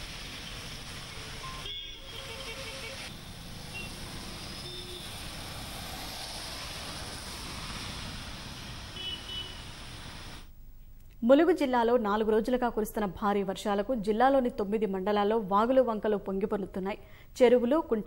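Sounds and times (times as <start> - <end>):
car tyres on wet road: 0.0 - 10.5
heavy rain: 0.0 - 10.5.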